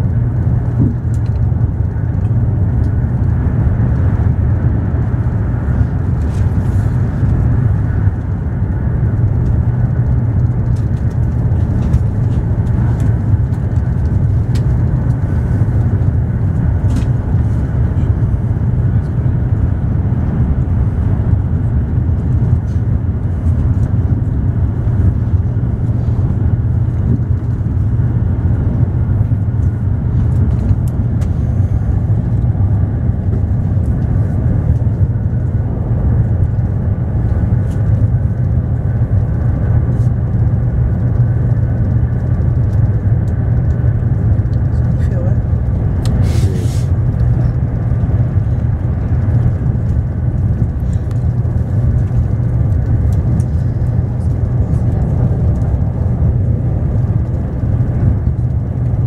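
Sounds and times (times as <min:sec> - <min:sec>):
train rumble inside carriage: 0:00.0 - 0:59.0.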